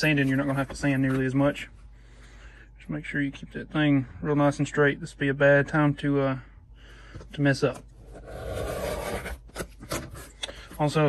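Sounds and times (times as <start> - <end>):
rotary cutter scraping through leather: 8.2 - 10.2.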